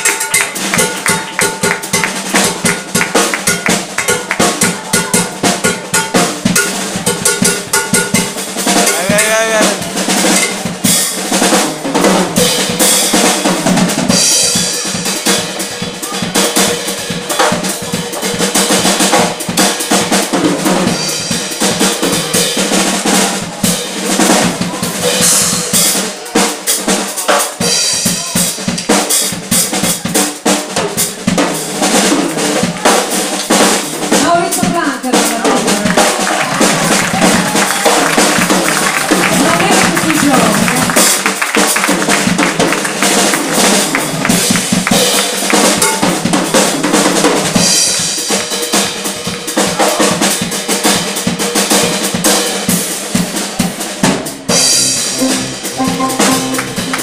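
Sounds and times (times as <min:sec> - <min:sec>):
drum kit playing: 0:00.0 - 0:57.0
electric bass: 0:54.5 - 0:57.0
keyboard playing: 0:54.5 - 0:57.0.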